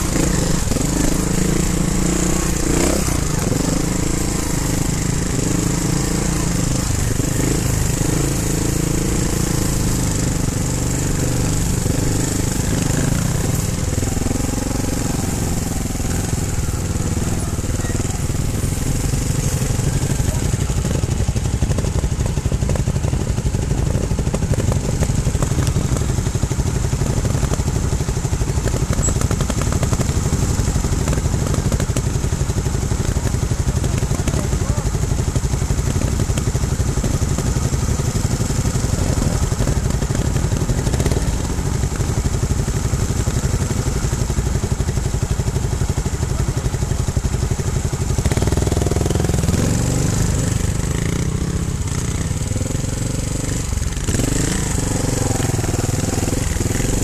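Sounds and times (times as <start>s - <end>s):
motorcycle engines idling: 0.0s - 57.0s
motorcycle revving pulling away: 0.0s - 57.0s.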